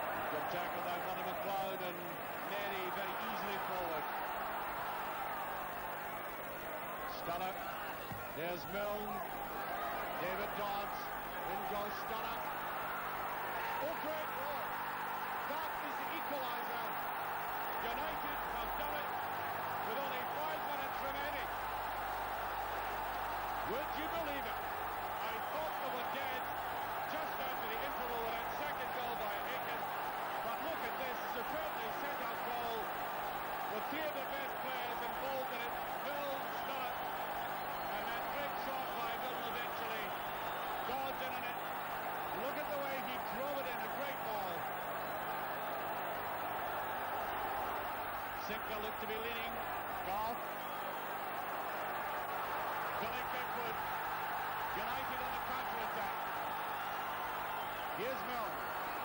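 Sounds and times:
stadium crowd cheering and chanting: 0.0 - 59.0.

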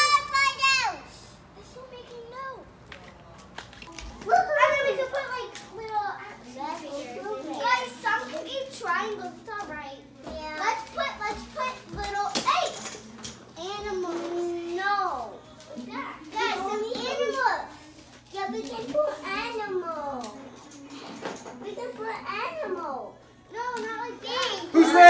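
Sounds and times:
children chattering and calling out: 0.0 - 2.9, 3.8 - 25.0.

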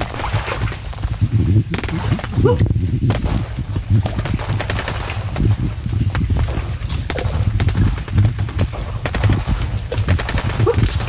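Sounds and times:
branches clicking and cracking: 0.0 - 11.0
pulsing low rumble: 0.0 - 11.0.

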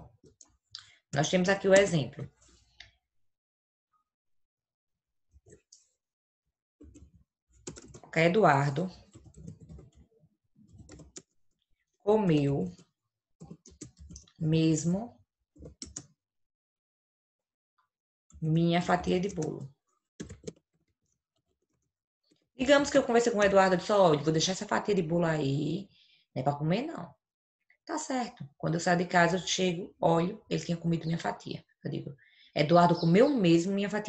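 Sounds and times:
computer keyboard keystrokes: 6.8 - 8.1, 10.7 - 11.3, 13.4 - 14.3, 15.6 - 16.1, 20.2 - 20.6.

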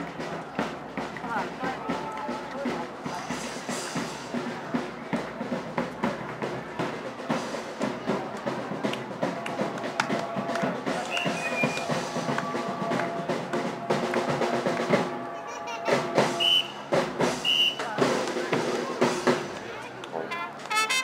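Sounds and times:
steady drum beat: 0.0 - 19.7
jazz band playing: 11.0 - 21.0.

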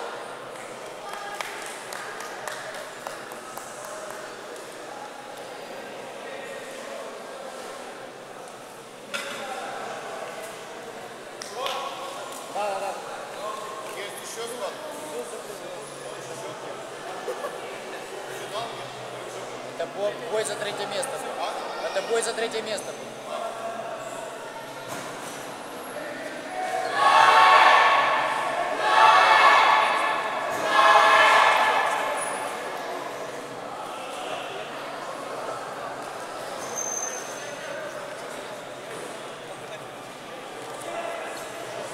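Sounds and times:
echoing chatter of voices: 0.0 - 41.9.

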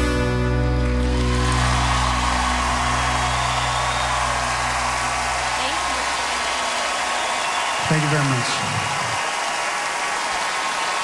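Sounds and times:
audience applauding: 0.5 - 11.0.

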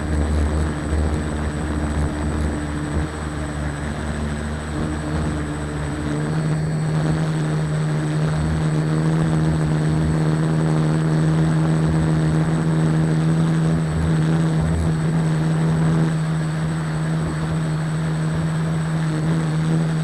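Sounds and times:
drone motors humming: 0.0 - 20.0
propeller wash rushing: 0.0 - 20.0.

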